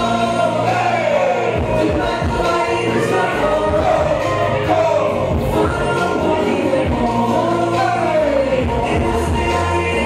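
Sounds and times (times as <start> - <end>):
backing track with bass line: 0.0 - 10.0
people singing: 0.0 - 10.0.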